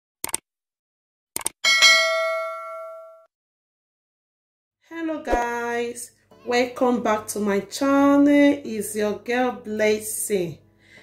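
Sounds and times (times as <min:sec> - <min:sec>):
notification bell ding: 0:01.6 - 0:03.3.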